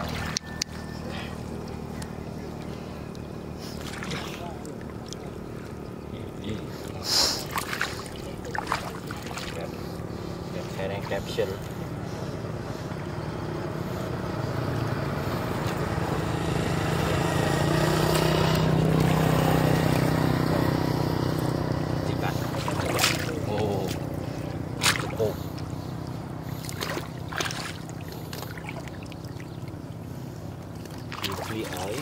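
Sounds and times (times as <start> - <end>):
motorbike engine passing: 0.0 - 32.0.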